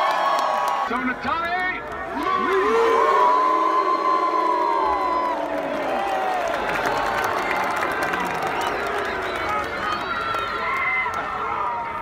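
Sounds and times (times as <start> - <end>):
crowd cheering and yelling: 0.0 - 12.0.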